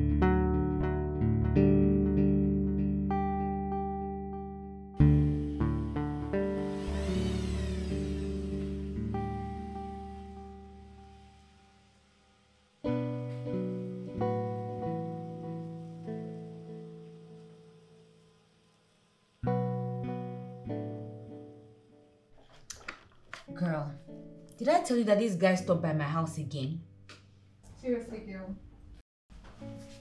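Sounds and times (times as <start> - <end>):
acoustic guitar chords: 0.0 - 11.8, 12.8 - 17.8.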